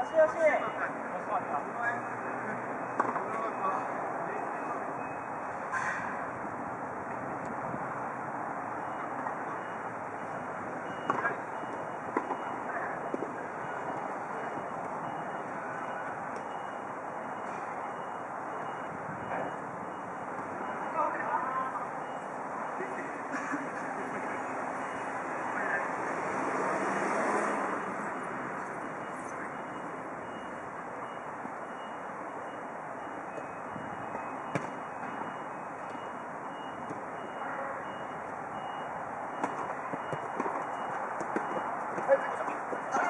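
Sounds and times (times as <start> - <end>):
distant players' voices: 8.8 - 43.0
ball being kicked: 34.5 - 34.8.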